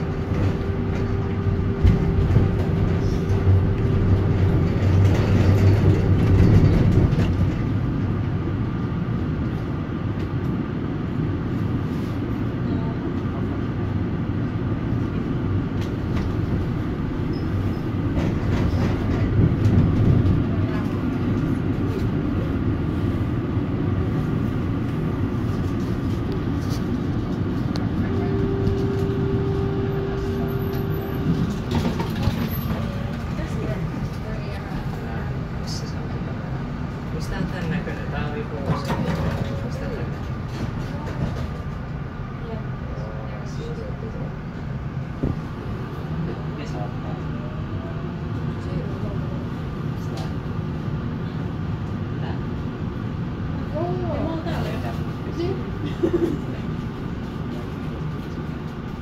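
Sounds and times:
tram wheels rumbling: 0.0 - 59.0.

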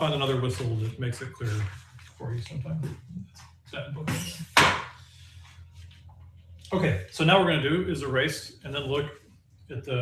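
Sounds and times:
paper rustling: 0.0 - 3.5.

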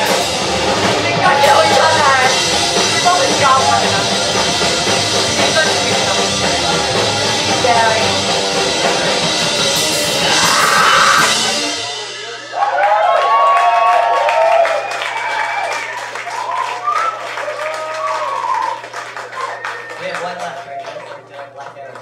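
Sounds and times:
loud punk band: 0.0 - 18.8
crowd shouting and cheering: 0.0 - 21.6
scattered clapping: 12.6 - 22.0.

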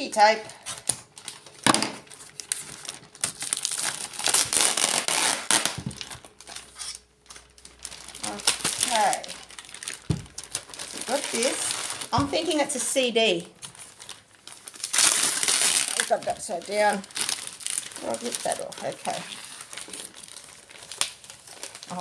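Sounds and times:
plastic satchel crinkling: 0.8 - 22.0.

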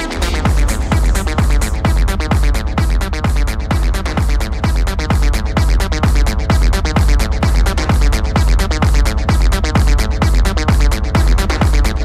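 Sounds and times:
repeating synth pattern: 0.0 - 11.9
kick drum beat: 0.0 - 12.0
ticking hi-hats: 0.0 - 12.0.

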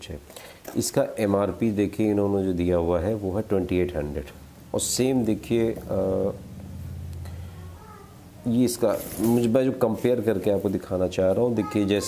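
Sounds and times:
man speaking: 0.0 - 6.4, 8.4 - 12.0.

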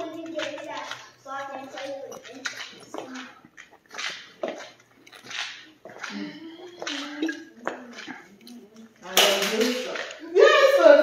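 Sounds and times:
person gulping: 2.9 - 8.6.

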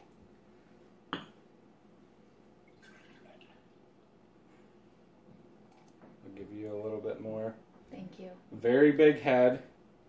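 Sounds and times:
beer pouring into glass: 2.6 - 3.6.

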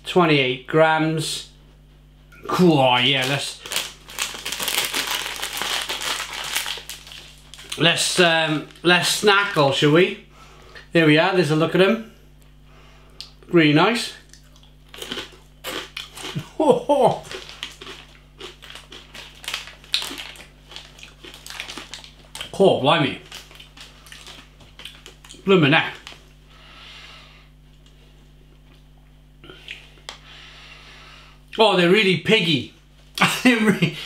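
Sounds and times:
plastic snack packet crinkling: 3.0 - 9.6, 17.1 - 26.2
person chewing crunchy food: 3.2 - 7.8, 14.2 - 22.6, 23.2 - 26.4.

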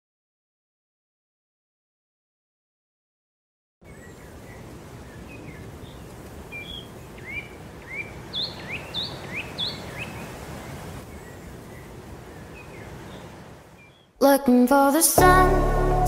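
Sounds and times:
bird chirps: 3.9 - 10.3, 11.1 - 14.2.

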